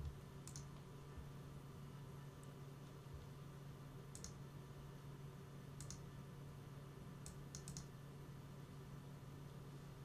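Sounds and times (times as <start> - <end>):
computer mouse clicks: 0.0 - 0.9, 4.1 - 4.4, 5.8 - 6.1, 7.2 - 7.9.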